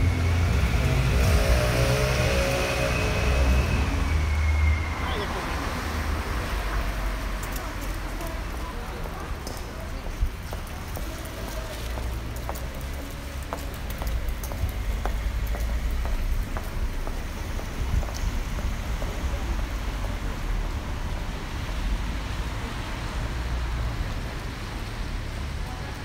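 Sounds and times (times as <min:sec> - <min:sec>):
traffic on wet pavement: 0:00.0 - 0:26.0.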